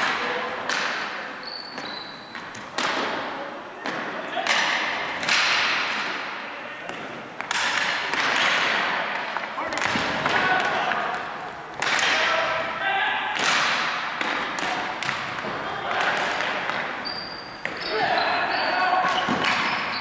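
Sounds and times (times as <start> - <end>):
sticks cracking against ball: 6.9 - 12.5, 13.4 - 17.0.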